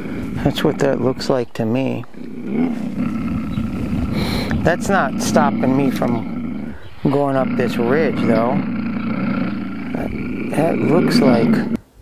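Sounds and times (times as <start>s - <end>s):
low rough growl: 0.0s - 11.8s.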